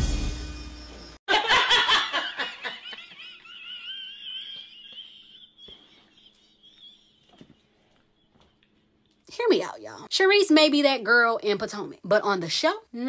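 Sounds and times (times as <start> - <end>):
hysterical laughter: 1.3 - 8.5.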